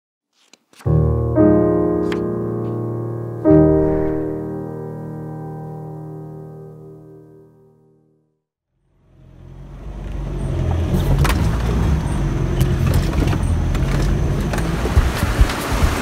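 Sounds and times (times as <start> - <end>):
road rumble: 8.8 - 16.0
vehicle engine running: 8.8 - 16.0
vehicle knocks and rattles: 10.7 - 16.0.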